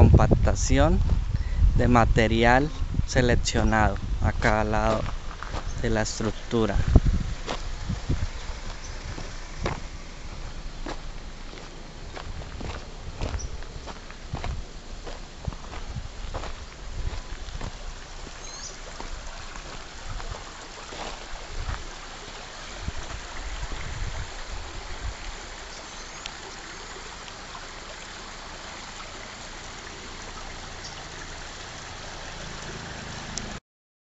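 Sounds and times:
footsteps crunching on gravel: 3.9s - 22.0s.

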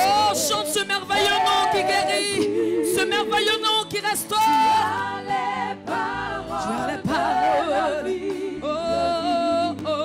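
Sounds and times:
woman singing lead: 0.0s - 10.0s
women backing singers: 0.0s - 10.0s.

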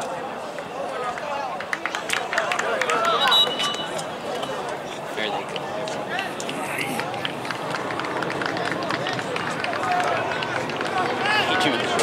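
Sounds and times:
players and spectators calling out: 0.0s - 12.0s.

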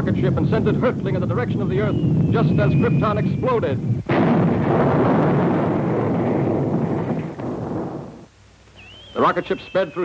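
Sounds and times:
cartoon planet explosion blast: 4.1s - 8.2s.

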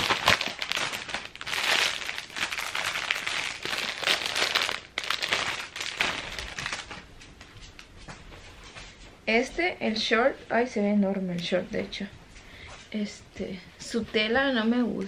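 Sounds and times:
plastic and paper packaging crinkling: 0.0s - 7.9s.

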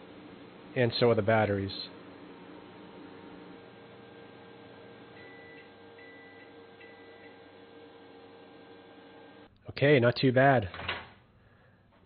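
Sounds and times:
low electrical hum: 0.0s - 12.0s
microwave beeps: 5.0s - 9.3s.

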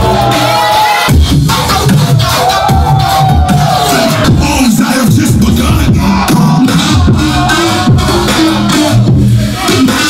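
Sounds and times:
crowd shouting: 0.0s - 1.2s, 2.0s - 5.0s, 5.7s - 10.0s
electronic club music: 0.0s - 10.0s.

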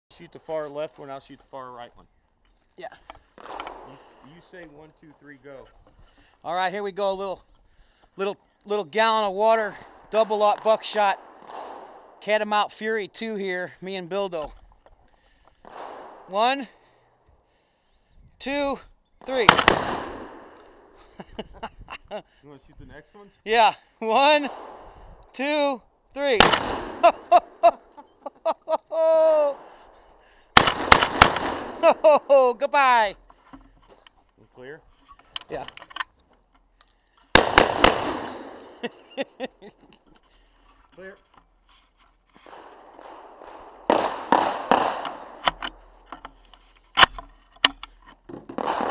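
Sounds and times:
shotgun blasts echoing: 3.4s - 4.3s, 9.7s - 12.2s, 15.6s - 16.3s, 19.4s - 21.0s, 24.3s - 25.1s, 26.3s - 27.3s, 29.5s - 32.1s, 37.3s - 38.8s, 42.5s - 46.0s, 48.6s - 48.9s
gunshot cracks: 10.6s - 12.2s, 15.7s - 16.3s, 19.4s - 20.7s, 26.3s - 27.3s, 30.6s - 32.0s, 37.3s - 38.8s, 42.5s - 45.6s, 48.6s - 48.9s
metallic clicks of gun handling: 33.3s - 37.4s, 45.0s - 48.3s.

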